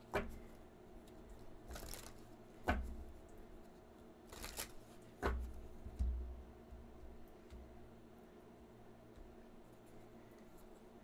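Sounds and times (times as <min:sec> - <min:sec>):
cards being shuffled: 0:01.7 - 0:02.2, 0:04.3 - 0:04.9.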